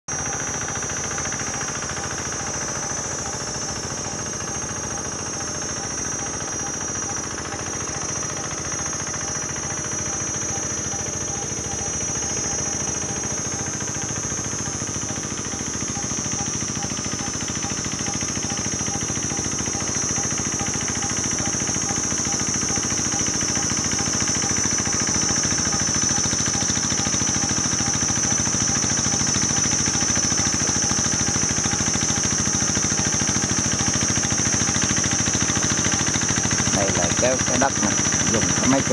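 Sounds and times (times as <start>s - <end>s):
diesel engine knocking chug: 0.1s - 38.9s
high-pitched whine: 0.1s - 38.9s.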